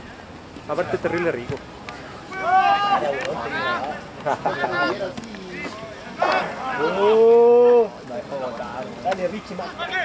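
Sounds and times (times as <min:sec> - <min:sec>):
low chatter: 0:00.0 - 0:10.0.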